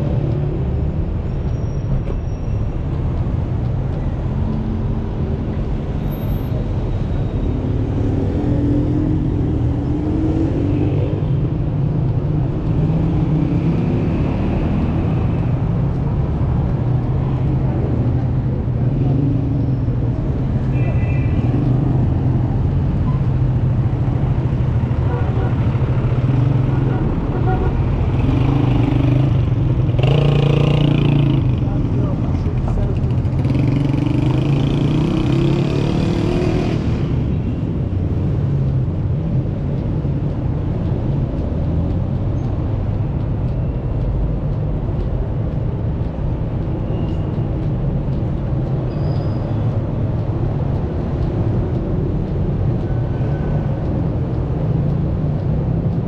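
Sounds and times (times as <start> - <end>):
traffic engine rumble: 0.0 - 56.0.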